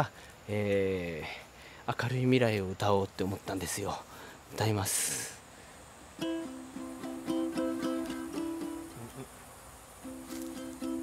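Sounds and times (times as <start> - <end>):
insects buzzing: 0.0 - 11.0
ukulele strumming: 6.2 - 9.2, 10.0 - 11.0.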